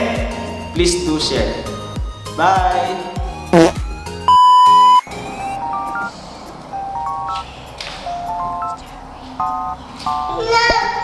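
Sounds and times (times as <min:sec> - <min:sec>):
censor bleep: 0:04.3 - 0:06.1
electronic jingle of beeps: 0:04.3 - 0:06.1.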